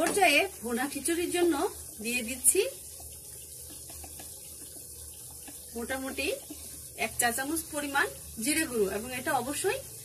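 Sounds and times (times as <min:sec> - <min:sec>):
spice paste sizzling in oil: 0:00.0 - 0:10.0
bubbling paste popping: 0:01.2 - 0:07.3.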